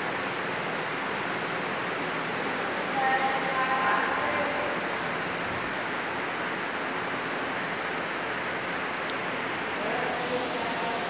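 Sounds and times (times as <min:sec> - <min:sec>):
steady indoor background hiss: 0:00.0 - 0:11.0.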